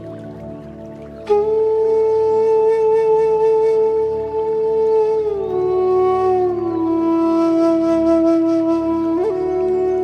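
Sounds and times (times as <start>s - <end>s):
bamboo flute note: 1.2s - 10.0s.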